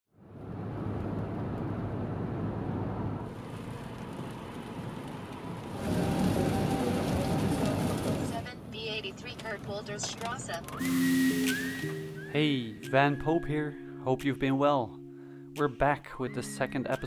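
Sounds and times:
tyres on wet road: 0:00.4 - 0:12.0
background music: 0:10.8 - 0:17.0.

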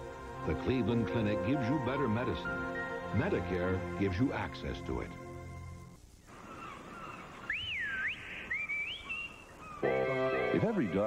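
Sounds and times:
music: 0:00.0 - 0:06.0, 0:09.8 - 0:11.0
faint outdoor background: 0:00.0 - 0:11.0
whistling in sweeping glides: 0:06.4 - 0:11.0.

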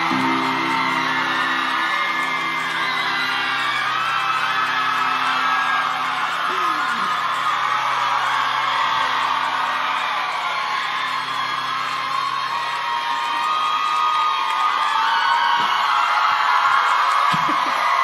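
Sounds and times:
audience cheering and screaming: 0:00.0 - 0:18.0.

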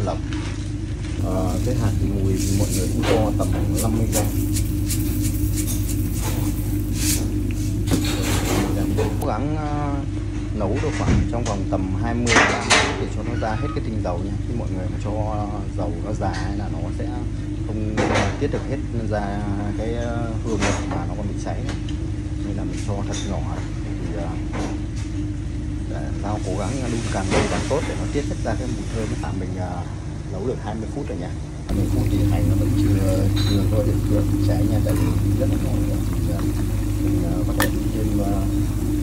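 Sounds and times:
low machine hum: 0:00.0 - 0:39.0
faint oil hiss: 0:01.2 - 0:09.2, 0:31.7 - 0:39.0.

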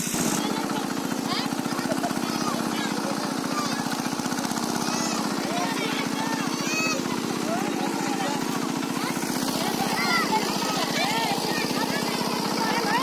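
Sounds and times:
small engine chugging: 0:00.0 - 0:13.0
people calling out: 0:00.8 - 0:13.0.

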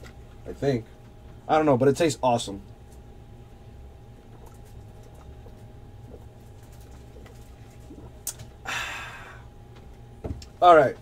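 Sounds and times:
low electrical hum: 0:00.0 - 0:11.0
breathy exhale: 0:08.6 - 0:09.5.

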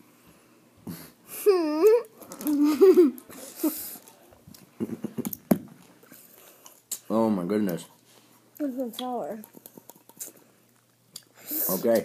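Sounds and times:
person whimpering: 0:01.3 - 0:04.0
mouth clicks and smacks: 0:04.5 - 0:07.8, 0:08.9 - 0:11.4
breath hiss: 0:11.4 - 0:12.0.

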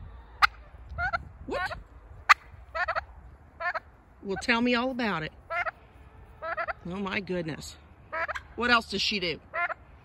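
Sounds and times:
turkey calling: 0:00.2 - 0:04.6, 0:05.4 - 0:06.9, 0:08.1 - 0:08.6, 0:09.5 - 0:09.8.

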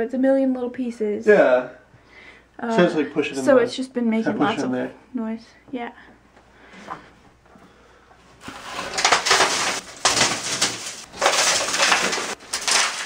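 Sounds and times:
broken glass crunching and falling: 0:08.4 - 0:13.0.

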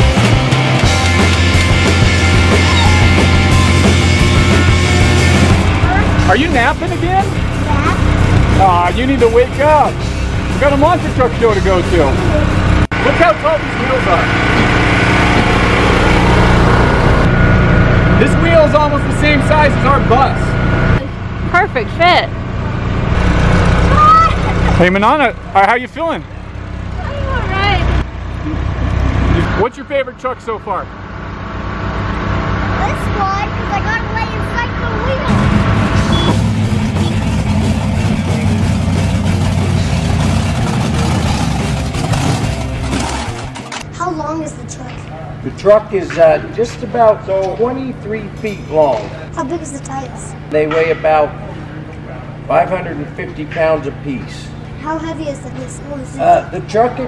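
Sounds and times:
engine running: 0:00.0 - 0:57.0.

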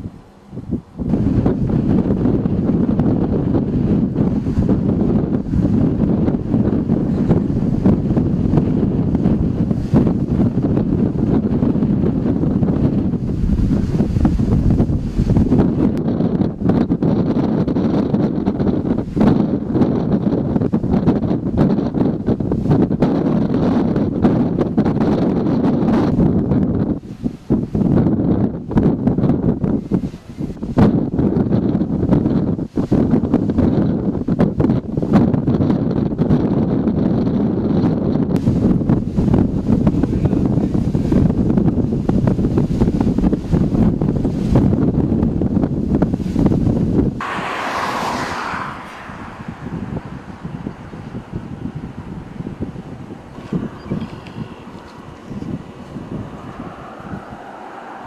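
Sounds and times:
strong wind buffeting microphone: 0:00.0 - 0:58.0.

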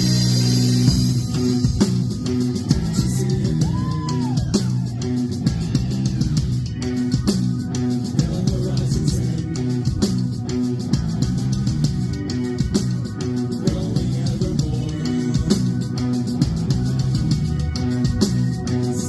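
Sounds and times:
bass guitar: 0:00.0 - 0:19.0
drum kit: 0:00.0 - 0:19.0
electric guitars: 0:00.0 - 0:19.0.

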